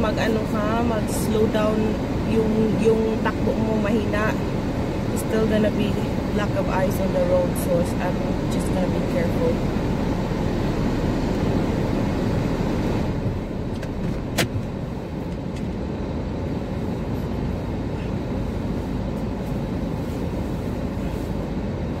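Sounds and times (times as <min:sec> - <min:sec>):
car cabin low rumble: 0:00.0 - 0:22.0.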